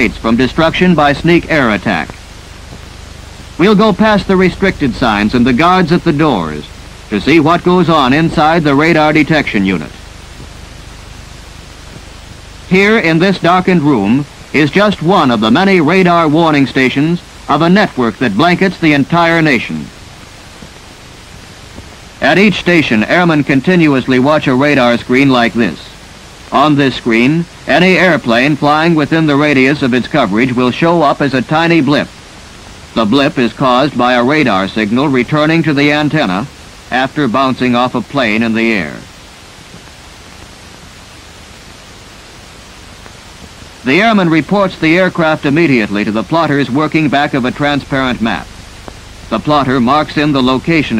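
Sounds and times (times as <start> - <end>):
old film soundtrack hiss: 0.0 - 50.9.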